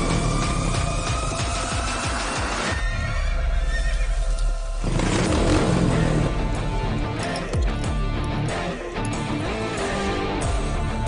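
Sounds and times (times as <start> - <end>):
dramatic film score: 0.0 - 11.0.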